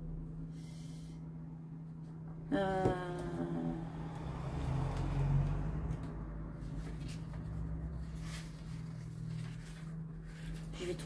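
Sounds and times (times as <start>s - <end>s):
low hum: 0.0s - 11.0s
paper pages rustling: 6.0s - 11.0s.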